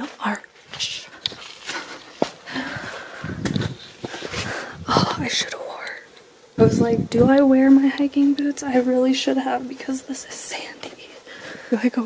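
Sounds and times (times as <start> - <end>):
footsteps in soft sand: 0.0 - 5.3
close breathing: 1.6 - 5.2, 11.2 - 11.8.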